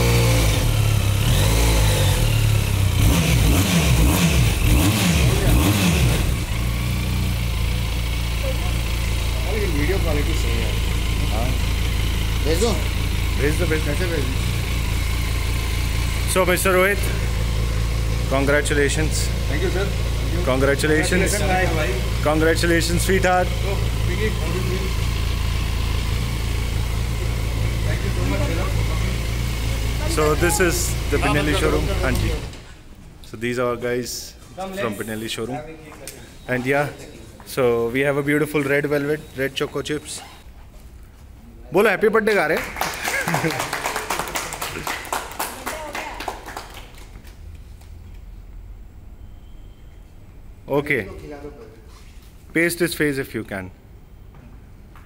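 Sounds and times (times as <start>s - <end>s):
motorcycle engine idling and revving: 0.0s - 32.8s.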